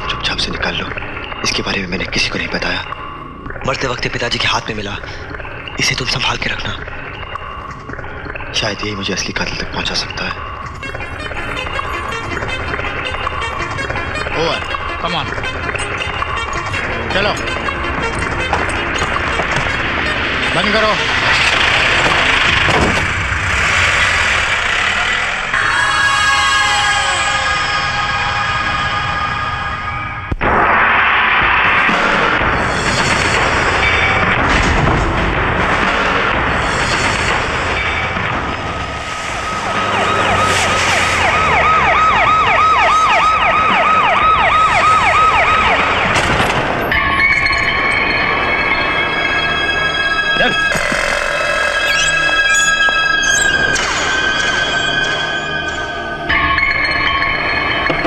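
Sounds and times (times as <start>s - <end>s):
dramatic film music: 0.0s - 30.5s, 31.4s - 58.0s
police siren wailing: 8.5s - 29.8s, 38.1s - 56.5s.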